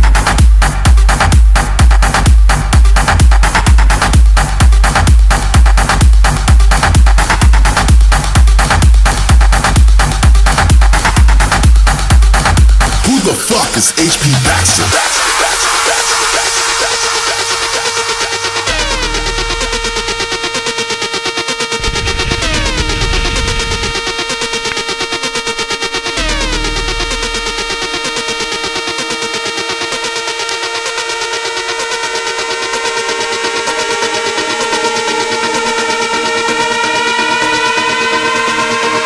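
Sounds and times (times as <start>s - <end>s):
deep bass: 0.0s - 13.3s, 17.7s - 34.3s
synthesizer chords over fast beat: 0.0s - 39.0s.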